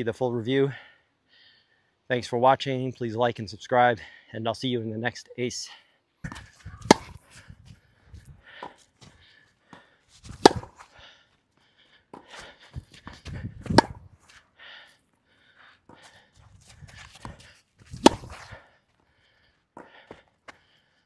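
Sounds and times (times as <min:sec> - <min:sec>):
tennis ball bounces: 0:06.2 - 0:07.3, 0:10.3 - 0:10.8, 0:12.1 - 0:14.1, 0:17.1 - 0:18.5
tennis racket hits: 0:06.3 - 0:07.3, 0:10.3 - 0:10.8, 0:13.1 - 0:14.0, 0:18.0 - 0:18.5.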